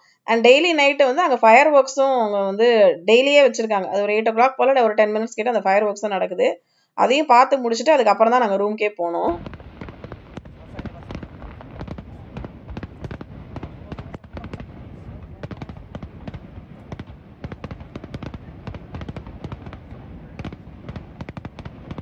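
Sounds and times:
fireworks bangs and crackles: 9.3s - 22.0s.

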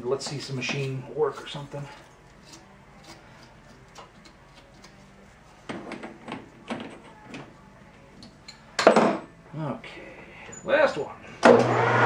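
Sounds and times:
lathe humming: 11.5s - 12.0s
metal cutting noise: 11.5s - 12.0s.

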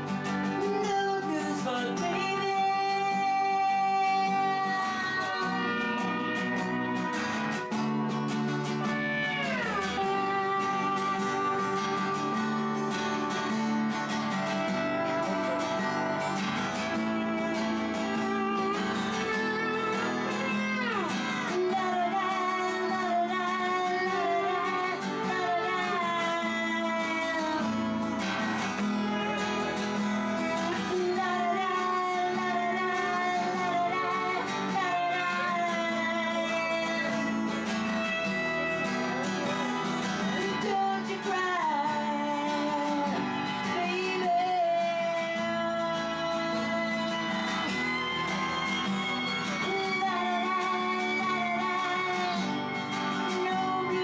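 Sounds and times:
slide guitar: 0.0s - 54.0s
strummed acoustic guitar: 0.0s - 54.0s
woman singing: 0.0s - 54.0s.

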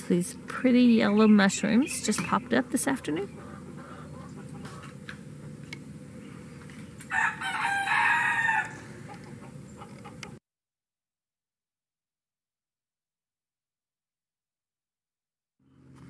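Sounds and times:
rooster crowing: 7.1s - 9.2s.

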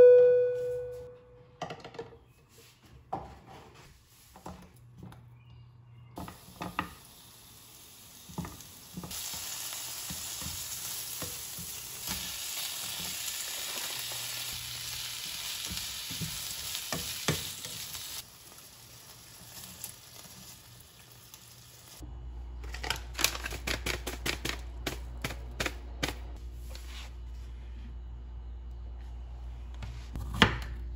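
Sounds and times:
food sizzling in pan: 6.2s - 22.0s.

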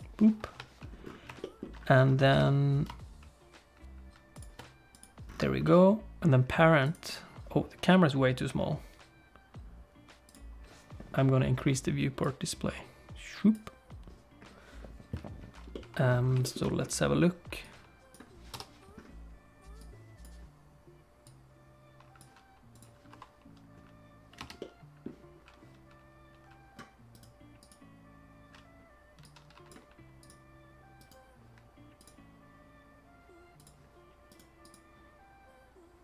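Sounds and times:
soft background music chords: 0.0s - 36.0s
mouse and keyboard clicks: 28.5s - 30.4s.

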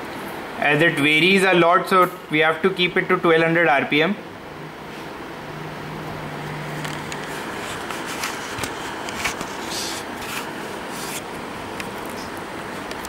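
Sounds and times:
light clicks and scrapes: 6.8s - 11.3s.

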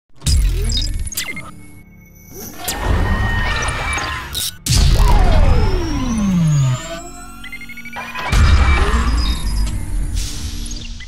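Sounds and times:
stepped electronic beeps: 0.3s - 11.0s
falling electronic sweep: 2.6s - 10.8s
deep hit: 4.7s - 6.7s.

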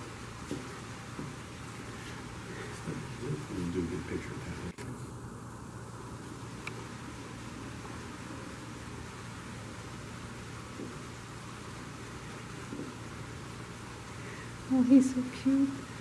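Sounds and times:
steady background hum and hiss: 0.0s - 16.0s.

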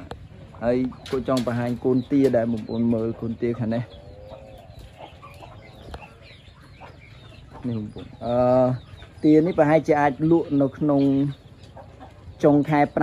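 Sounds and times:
chickens clucking softly: 0.0s - 13.0s
people talking: 0.6s - 3.9s, 7.6s - 11.4s, 12.4s - 13.0s.

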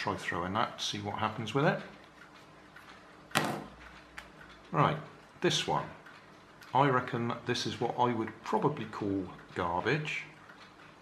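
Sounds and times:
sharp knock of hard toy: 3.3s - 3.7s.

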